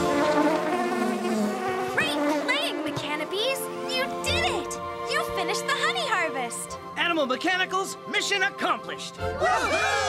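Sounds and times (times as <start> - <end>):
cartoon bees buzzing: 0.0 - 4.7
background music: 0.0 - 10.0.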